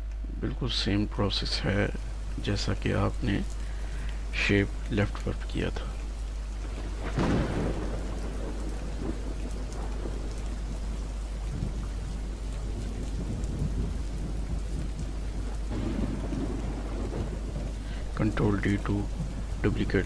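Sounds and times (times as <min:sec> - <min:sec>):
low hum: 0:00.0 - 0:20.0
rumble: 0:00.0 - 0:20.0
steady rushing noise: 0:01.1 - 0:20.0.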